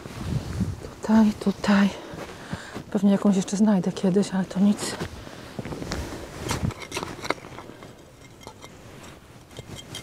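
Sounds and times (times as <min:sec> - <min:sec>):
hands scraping and rustling soil: 0:04.5 - 0:10.0.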